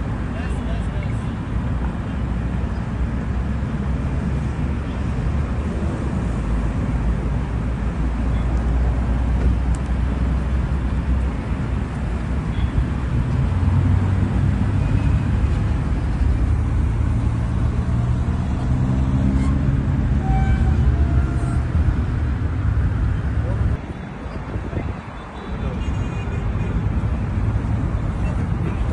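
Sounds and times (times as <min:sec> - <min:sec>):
street traffic noise: 0:00.0 - 0:28.9
car engine rumbling: 0:01.5 - 0:24.9.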